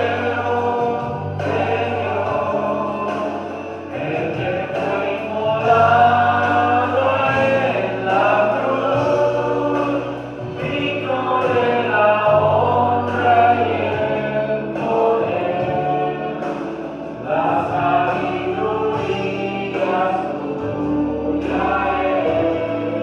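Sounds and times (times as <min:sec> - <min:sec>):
low steady accompaniment: 0:00.0 - 0:23.0
man singing into microphone: 0:00.0 - 0:23.0.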